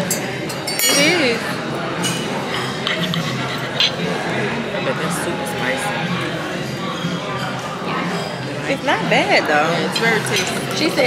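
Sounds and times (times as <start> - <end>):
metal spoon clinking on dish: 0.0 - 4.2, 9.8 - 11.0
music: 0.0 - 11.0.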